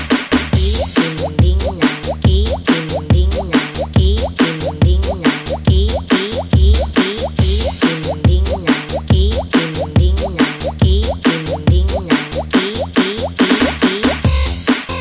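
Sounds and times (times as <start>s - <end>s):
thumping bass beat: 0.0s - 15.0s
bubbly synth blip sliding upward: 1.1s - 14.1s.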